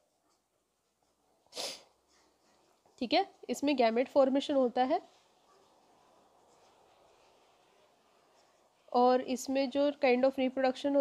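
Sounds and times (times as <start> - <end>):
person sniffing: 1.5 - 2.0.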